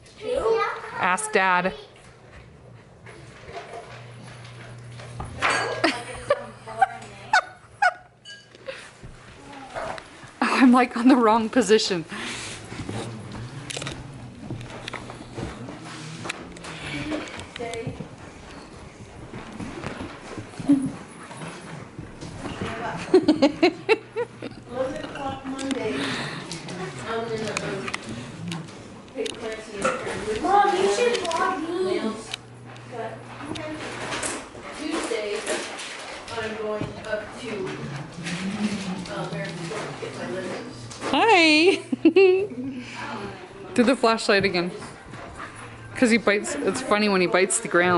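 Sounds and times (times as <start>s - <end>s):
low steady hum: 1.3s - 35.3s
paws knocking: 11.8s - 31.6s.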